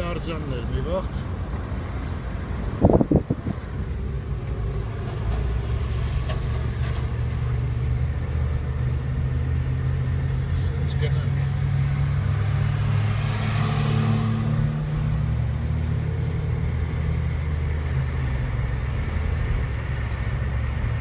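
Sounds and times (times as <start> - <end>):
car engine and road noise: 0.0 - 21.0.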